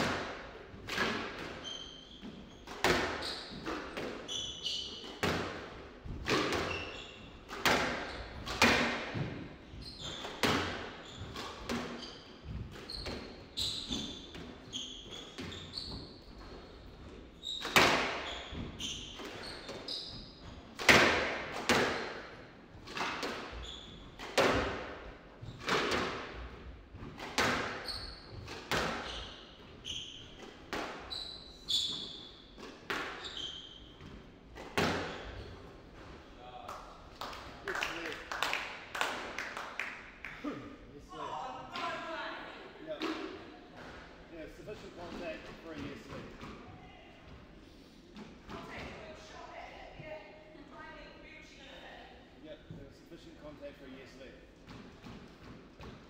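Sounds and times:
squash ball hitting rackets and walls: 0:00.0 - 0:36.3, 0:42.9 - 0:44.3, 0:45.0 - 0:46.8, 0:48.1 - 0:49.3, 0:54.6 - 0:56.0
shoes squeaking on wooden floor: 0:00.8 - 0:20.8, 0:22.7 - 0:24.7, 0:25.4 - 0:36.4.

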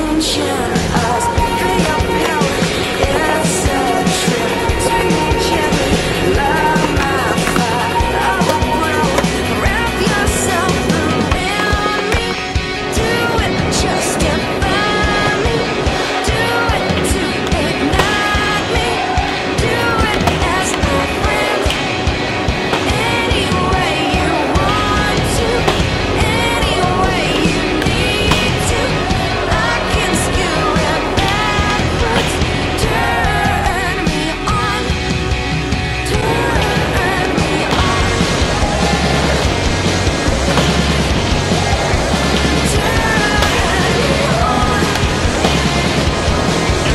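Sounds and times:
music track: 0:00.0 - 0:46.9
skateboard trucks grinding concrete: 0:00.0 - 0:46.9
skateboard wheels rolling: 0:00.0 - 0:46.9
skateboard clacks: 0:00.7 - 0:35.0, 0:35.8 - 0:46.9.

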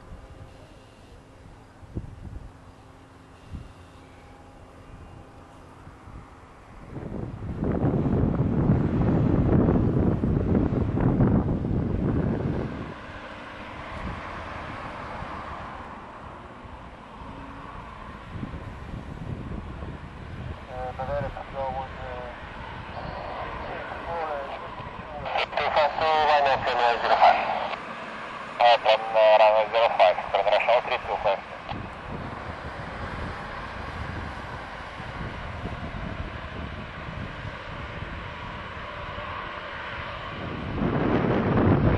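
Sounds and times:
jet engines whining: 0:00.0 - 0:41.9
loud low rumble: 0:17.1 - 0:27.8
faint voices: 0:20.6 - 0:27.8, 0:28.6 - 0:31.8.

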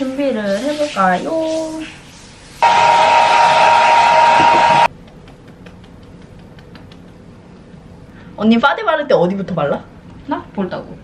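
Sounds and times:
hair dryer blowing: 0:02.6 - 0:04.9.

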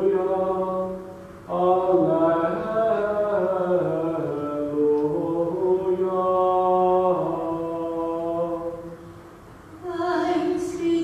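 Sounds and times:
chant-style singing in a church: 0:00.0 - 0:09.0, 0:09.8 - 0:11.0.

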